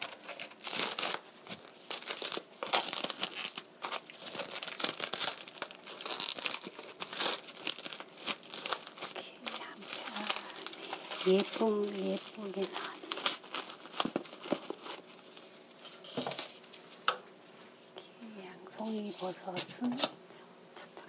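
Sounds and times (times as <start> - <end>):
plastic cling film crinkling: 0.0 - 17.2, 18.7 - 20.2.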